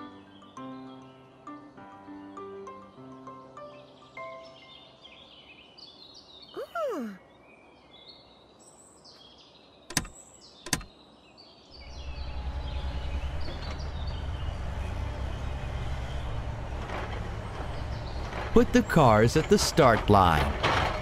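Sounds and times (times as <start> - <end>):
sharp clicks: 9.9 - 10.9.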